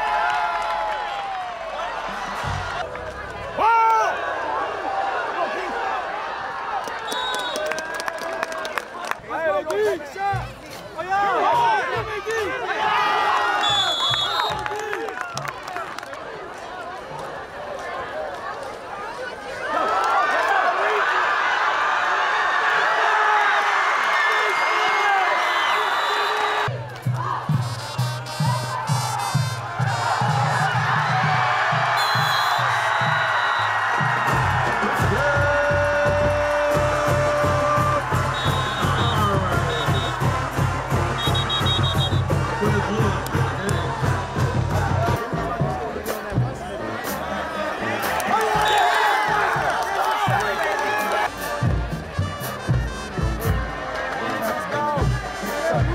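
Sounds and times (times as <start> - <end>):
crowd cheering and shouting: 0.0 - 55.9
music with steady drum beat: 27.1 - 47.3, 51.3 - 55.9.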